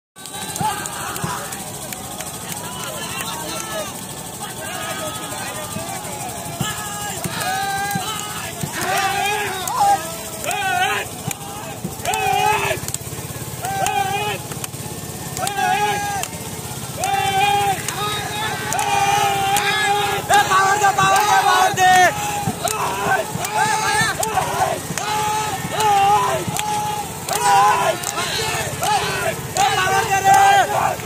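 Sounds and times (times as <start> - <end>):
low engine hum: 0.2 - 31.0
paddlers giving shouted calls: 0.2 - 31.0.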